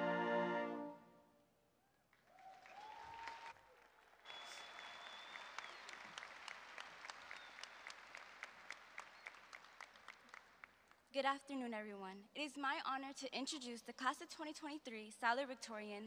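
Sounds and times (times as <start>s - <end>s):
faint audience applause: 2.1s - 11.1s
short whistles: 4.3s - 6.0s.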